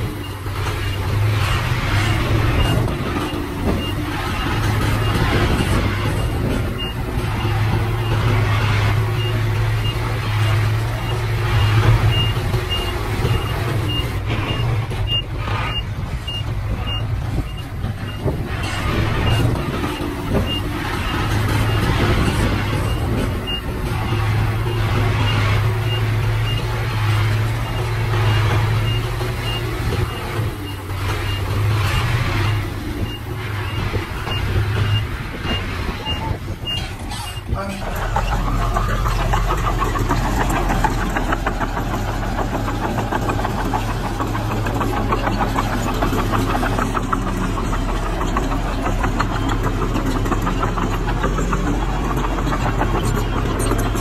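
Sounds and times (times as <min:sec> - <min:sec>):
diesel truck engine under load: 0:00.0 - 0:54.0
soil unloading from tipper: 0:00.0 - 0:54.0.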